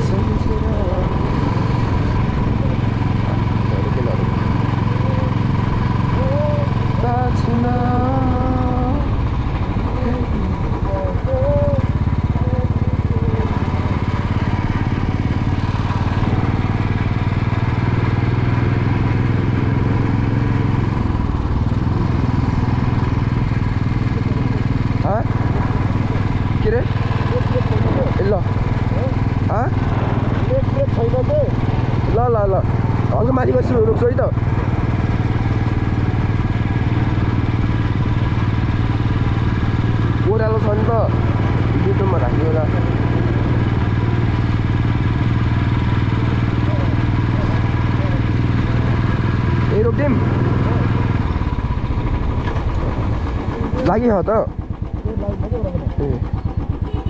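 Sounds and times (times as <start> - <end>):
motorcycle engine cruising: 0.0 - 57.0
person speaking: 6.1 - 9.2, 9.8 - 14.3, 24.1 - 34.4.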